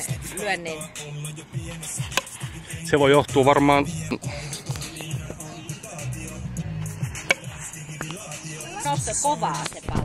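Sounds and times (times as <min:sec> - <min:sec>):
background music with bass line: 0:00.0 - 0:10.0
bat hitting ball: 0:07.2 - 0:07.7.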